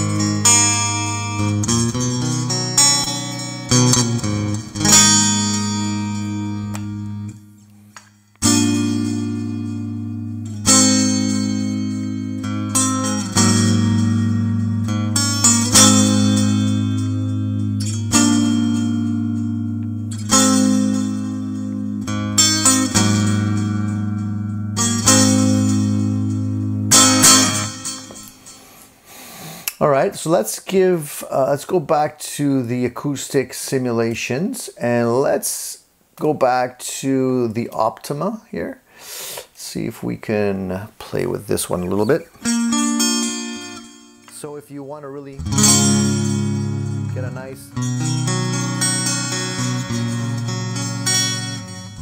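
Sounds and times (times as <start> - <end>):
guitar chords with delay: 0.0 - 28.6, 42.4 - 52.0.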